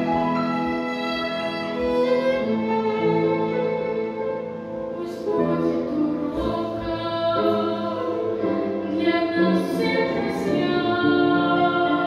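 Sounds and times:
solo violin hymn: 0.0s - 12.0s
woman singing: 5.0s - 12.0s.

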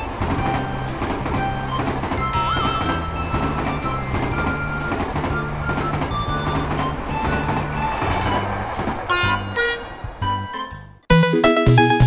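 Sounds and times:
cartoon train running noise: 0.0s - 12.0s
cheerful music with beat: 0.0s - 12.0s.

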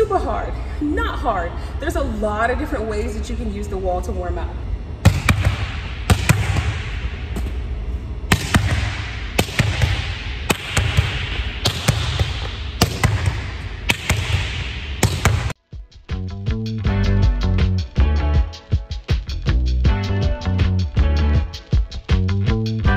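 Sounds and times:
volleyball smacking a gym wall: 5.0s - 7.6s, 8.3s - 15.6s
music: 15.1s - 22.9s.

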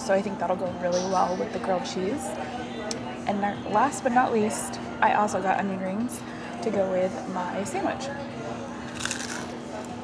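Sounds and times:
crunch of biting fried food: 8.9s - 9.6s.

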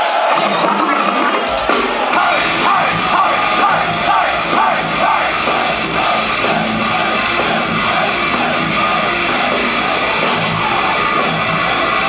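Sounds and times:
distorted electric guitars: 0.0s - 12.0s
drum kit: 0.0s - 12.0s
metal band playing live: 0.0s - 12.0s
deep bass: 1.5s - 12.0s.

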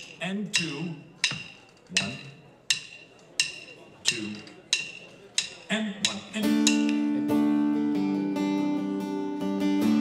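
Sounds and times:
sharp percussion clicks: 0.0s - 7.2s.

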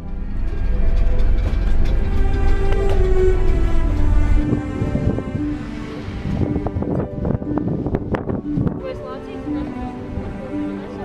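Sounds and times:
heavy low rumble: 0.0s - 11.0s
music with held tones: 0.0s - 11.0s.

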